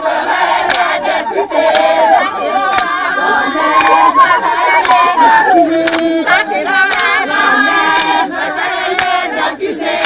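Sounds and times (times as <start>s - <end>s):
women singing together: 0.0s - 10.0s
sharp clap: 0.5s - 0.9s, 1.6s - 2.0s, 2.7s - 3.0s, 4.8s - 5.0s, 5.8s - 6.1s, 6.9s - 7.2s, 7.9s - 8.2s, 9.0s - 9.2s.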